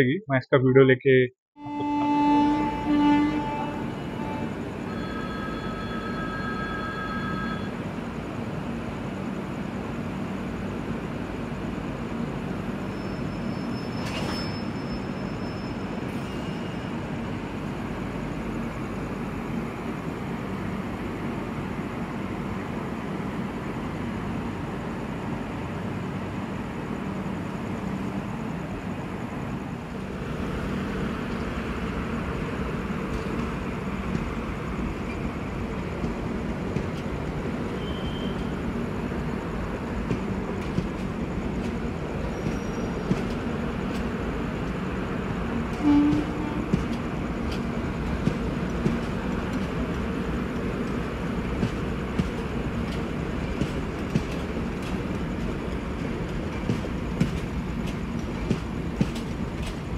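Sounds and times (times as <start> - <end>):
train horn toot: 1.6 - 7.8, 37.7 - 38.6, 45.7 - 47.0
train rumbling: 1.6 - 59.9.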